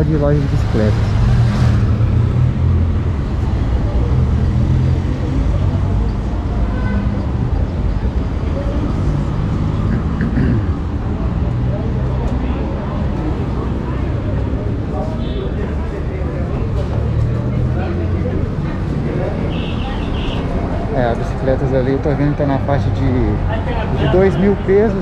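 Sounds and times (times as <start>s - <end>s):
car and motorcycle engines passing: 0.0s - 25.0s
voices of passers-by: 0.0s - 25.0s.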